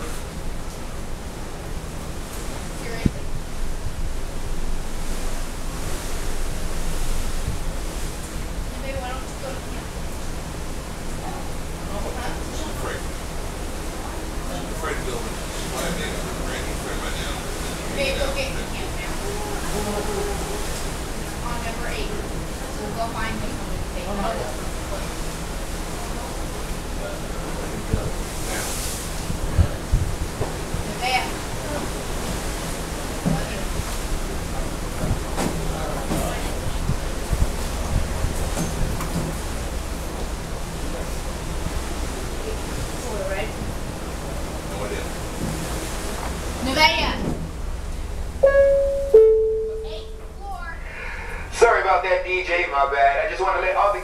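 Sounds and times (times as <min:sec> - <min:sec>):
wind and sea rushing: 0:00.0 - 0:54.0
faint voices: 0:13.9 - 0:28.8
wind blowing over microphone: 0:27.5 - 0:44.4.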